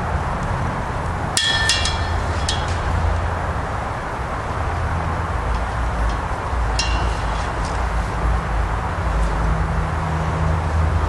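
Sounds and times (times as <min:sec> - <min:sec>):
low outdoor rumble: 0:00.0 - 0:11.0
tent pole ringing clink: 0:01.4 - 0:03.4, 0:05.6 - 0:08.6.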